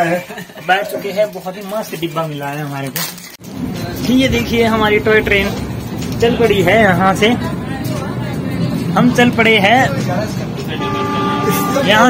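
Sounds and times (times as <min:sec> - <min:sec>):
train carriage running noise: 0:03.4 - 0:12.0
train horn blast: 0:10.6 - 0:12.0.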